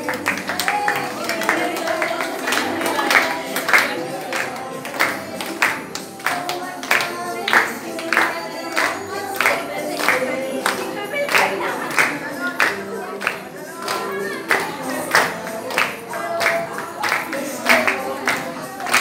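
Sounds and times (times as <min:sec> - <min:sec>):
group clapping in time: 0:00.0 - 0:19.0
person singing: 0:00.0 - 0:19.0.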